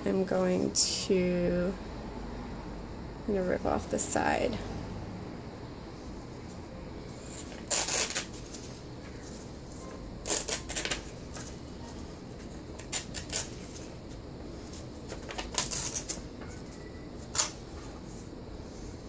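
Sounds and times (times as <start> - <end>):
paper rustling: 7.2 - 17.6
paper tearing against ruler: 7.3 - 8.4, 10.2 - 11.0.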